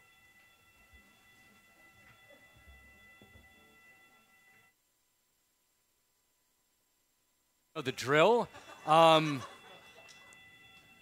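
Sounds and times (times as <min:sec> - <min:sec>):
high-pitched fire alarm tone: 0:00.0 - 0:04.8, 0:08.1 - 0:11.0.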